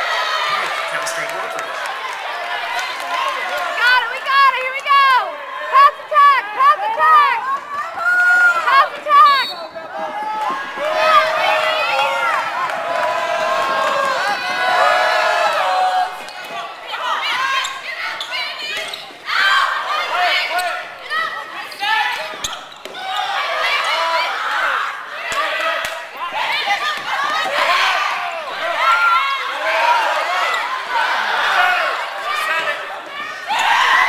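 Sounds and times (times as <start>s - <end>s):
players shouting on court: 0.0s - 34.0s.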